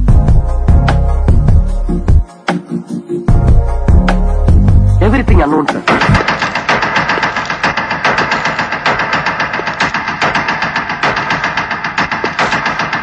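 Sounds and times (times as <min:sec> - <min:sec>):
fast rattle of sharp cracks: 0:05.9 - 0:13.0.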